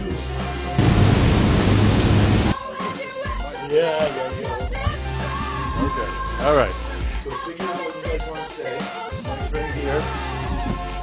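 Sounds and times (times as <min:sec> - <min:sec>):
background music: 0:00.0 - 0:11.0
loud rush of noise: 0:00.8 - 0:02.6.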